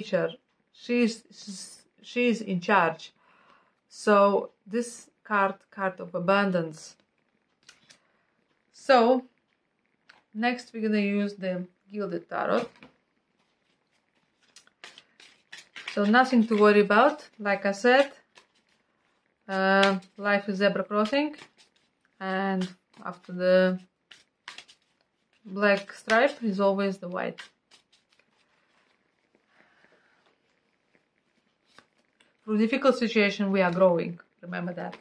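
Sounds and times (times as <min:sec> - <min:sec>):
tarot cards rustling and clicking: 0:06.9 - 0:08.7, 0:09.4 - 0:10.4, 0:12.4 - 0:33.9, 0:34.6 - 0:35.0.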